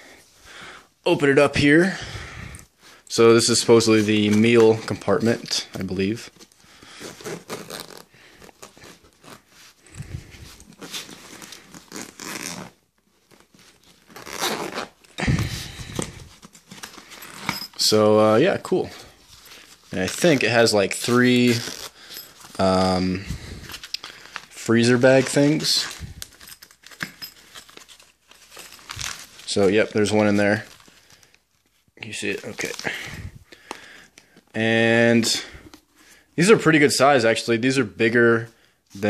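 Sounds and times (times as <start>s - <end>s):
zipper rasping open: 6.9s - 17.8s, 21.2s - 22.6s
fabric and foil rustling: 19.1s - 33.4s.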